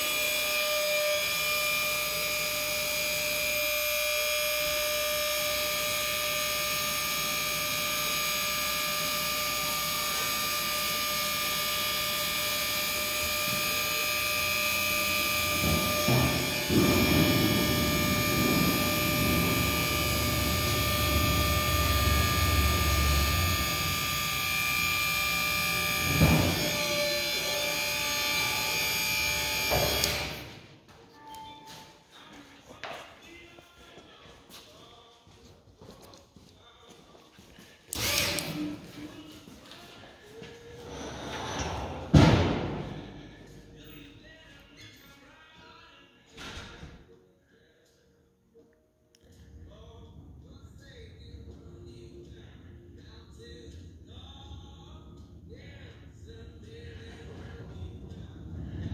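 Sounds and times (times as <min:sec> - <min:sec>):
hydraulic pump whining: 0:00.0 - 0:30.7, 0:37.9 - 0:39.3, 0:52.3 - 0:58.9
low rough rumble: 0:49.6 - 0:58.9.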